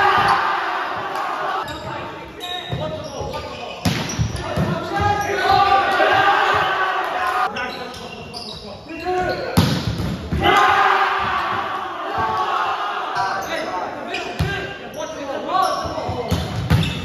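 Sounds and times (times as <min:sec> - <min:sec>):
players shouting: 0:00.0 - 0:01.7, 0:04.4 - 0:07.5, 0:10.3 - 0:14.8.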